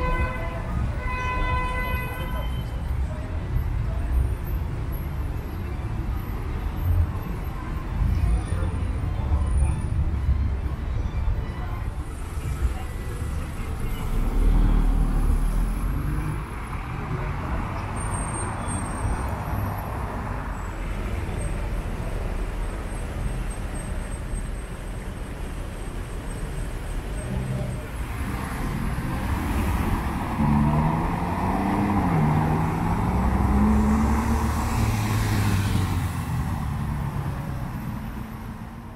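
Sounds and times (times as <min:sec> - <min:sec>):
voices of passers-by: 0:00.0 - 0:38.9
cars driving past: 0:26.1 - 0:38.9.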